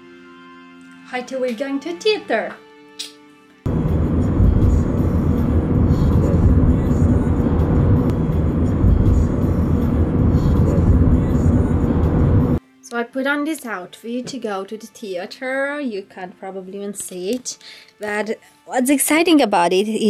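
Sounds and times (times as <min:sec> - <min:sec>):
car road and engine rumble: 0:03.7 - 0:12.6.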